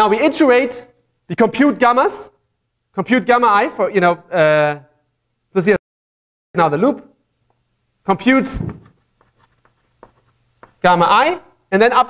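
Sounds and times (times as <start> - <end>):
chalk tapping and scratching: 8.5 - 11.0.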